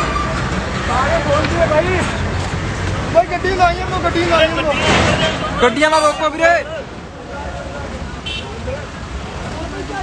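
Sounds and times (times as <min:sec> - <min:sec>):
road traffic rumble: 0:00.0 - 0:10.0
crowd of men talking: 0:00.6 - 0:10.0.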